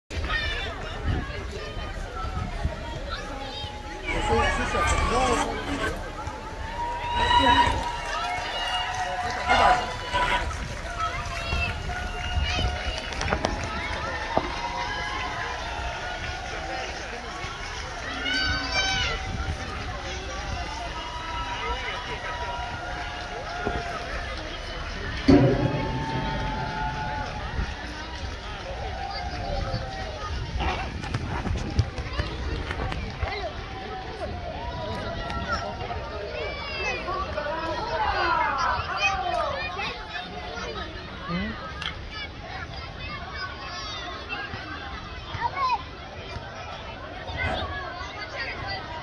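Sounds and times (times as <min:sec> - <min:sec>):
children talking and calling out: 0:00.1 - 0:16.2, 0:17.1 - 0:49.0
low bump: 0:22.7 - 0:30.1.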